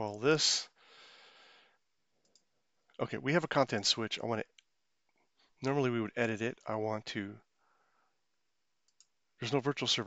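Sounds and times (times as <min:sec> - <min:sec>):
faint breath: 0:00.8 - 0:01.8, 0:07.6 - 0:08.2
computer mouse click: 0:08.9 - 0:09.2.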